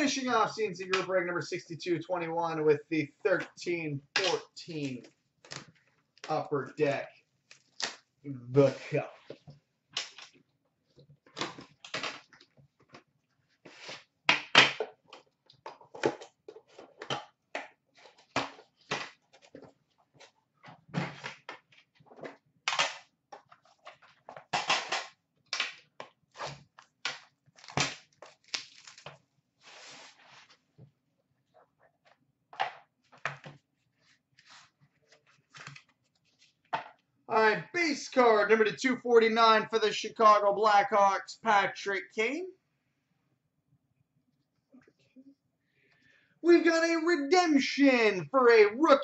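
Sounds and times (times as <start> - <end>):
wrapping rustling and crinkling: 26.2 - 30.7.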